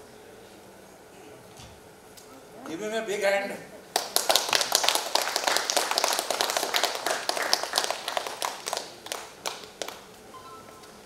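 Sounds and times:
audience clapping: 3.9 - 10.2.

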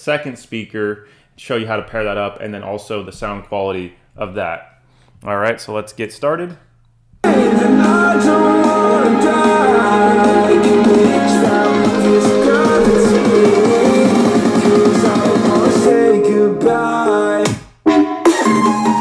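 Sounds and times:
rock music with guitar and singing: 7.2 - 17.6.

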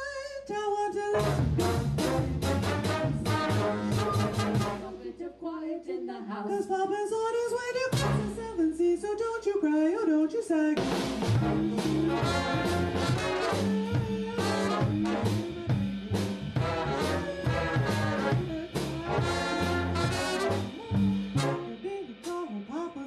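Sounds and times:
woman singing: 0.0 - 1.4, 4.0 - 10.8, 11.4 - 23.0
big band brass and drums: 1.1 - 5.1, 7.9 - 8.8, 10.8 - 23.0.

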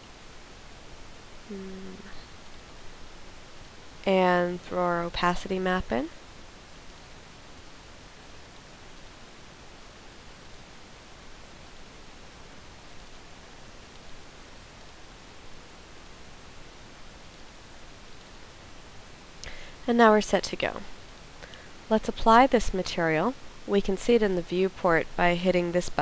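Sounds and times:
faint background hiss: 0.0 - 26.0.

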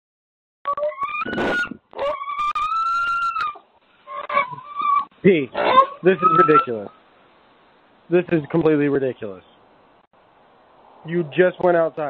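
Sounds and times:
pig squealing: 0.7 - 7.0.

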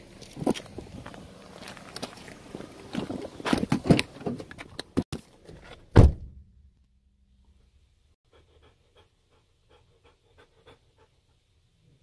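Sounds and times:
heavy thump: 6.0 - 6.5
dog panting: 8.3 - 11.4.

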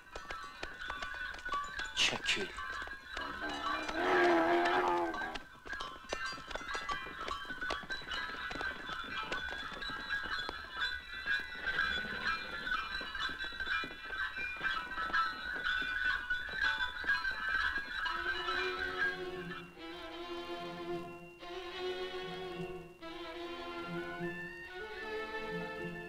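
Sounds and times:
horse hooves clip-clopping: 0.0 - 26.0.

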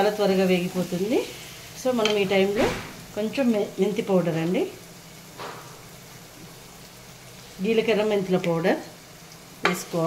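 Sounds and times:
oil sizzling in a pot: 0.0 - 10.0.

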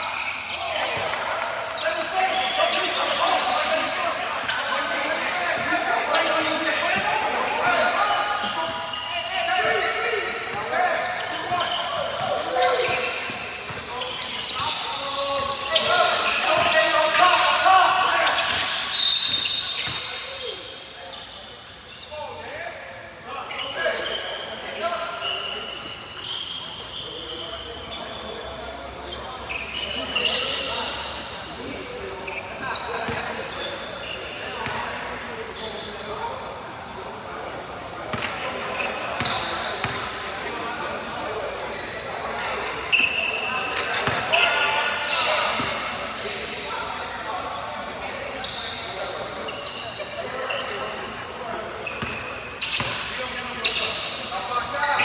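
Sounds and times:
players and spectators calling out: 0.0 - 55.0.

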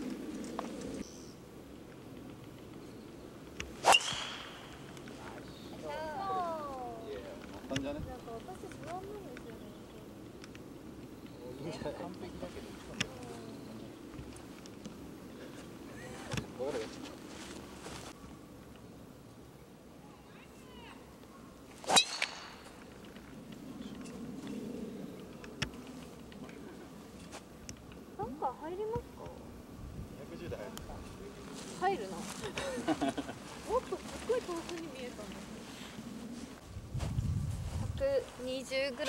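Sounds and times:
golf driver striking ball: 3.8 - 4.8, 21.9 - 22.6.

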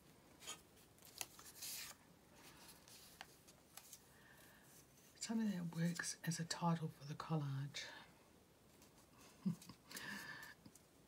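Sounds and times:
paper rustling: 0.4 - 4.1.

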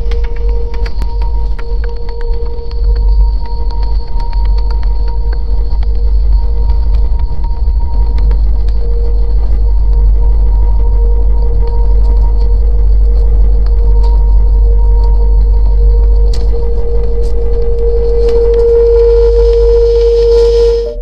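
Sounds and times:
scattered clicks: 0.0 - 20.7
sub-bass drone: 0.0 - 21.0
sustained mid-pitched tone: 0.0 - 21.0.

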